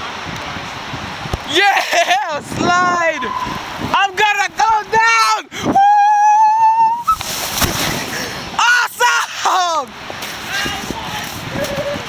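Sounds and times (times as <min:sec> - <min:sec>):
person shouting woo: 0:05.2 - 0:07.1.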